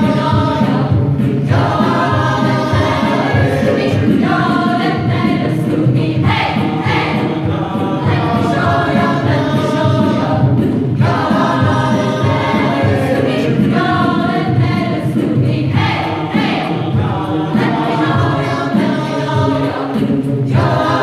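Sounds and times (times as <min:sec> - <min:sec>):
mixed choir singing: 0:00.0 - 0:21.0.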